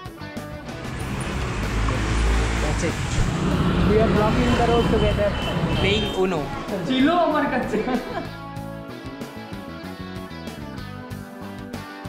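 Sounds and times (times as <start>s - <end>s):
guitar background music: 0.0s - 4.6s, 6.4s - 12.0s
street traffic noise: 0.5s - 8.4s
vehicle rumbling past: 0.6s - 8.4s
voices: 0.8s - 8.4s.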